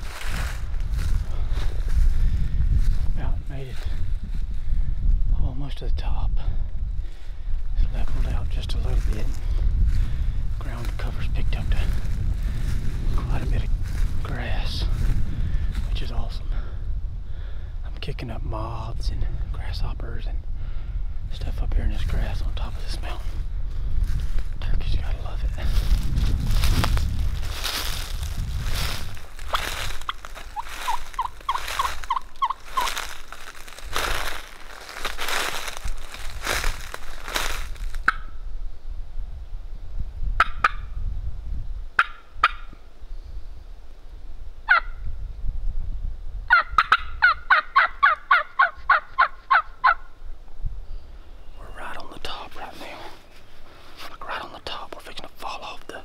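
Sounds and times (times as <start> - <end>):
footsteps crunching through leaves: 0.0 - 4.5, 8.0 - 11.0, 11.6 - 16.0, 24.0 - 24.6, 25.4 - 38.1
turkey yelps: 30.1 - 33.0, 44.7 - 44.9, 46.5 - 50.0.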